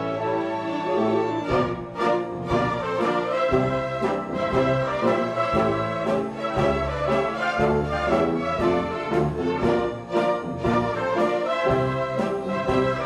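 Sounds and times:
symphony orchestra playing: 0.0s - 13.0s.

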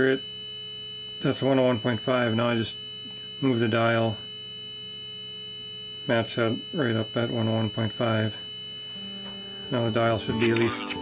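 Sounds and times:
steady test tone from radio speaker: 0.0s - 11.0s.

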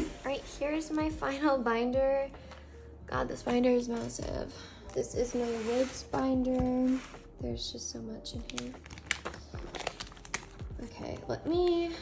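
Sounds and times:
plastic pages crinkling: 8.4s - 10.6s.

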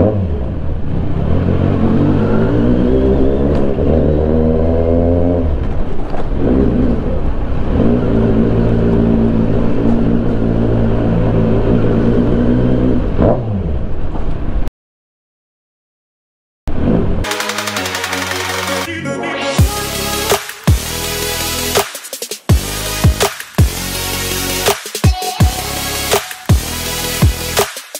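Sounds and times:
motorcycle engine revving: 0.0s - 13.9s.

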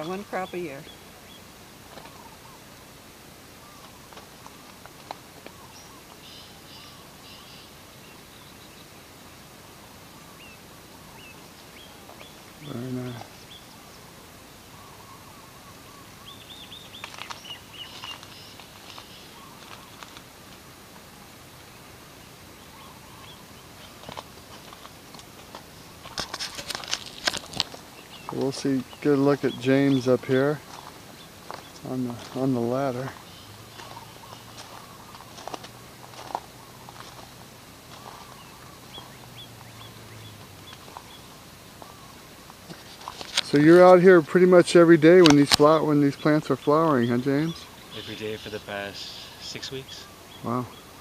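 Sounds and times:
small birds chirping: 0.0s - 51.0s
steady background hiss: 0.0s - 51.0s
high bird chirps: 5.4s - 9.0s, 14.7s - 20.2s, 45.4s - 51.0s
soft clicks and rustles: 16.9s - 21.1s, 23.2s - 28.6s, 33.8s - 38.4s, 40.4s - 44.0s
light clicks and rustles: 24.0s - 28.6s, 42.5s - 43.7s.

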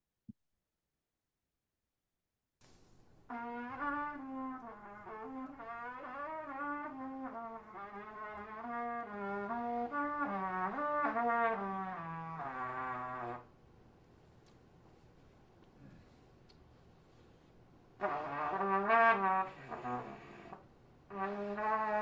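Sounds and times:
brass instrument melody: 3.3s - 13.5s, 18.0s - 22.0s.

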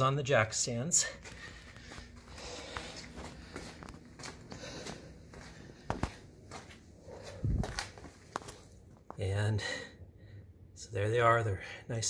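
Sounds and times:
footsteps on concrete: 1.0s - 9.2s.

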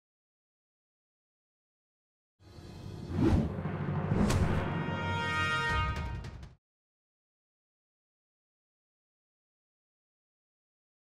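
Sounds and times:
dramatic score with deep drums: 3.4s - 6.6s.

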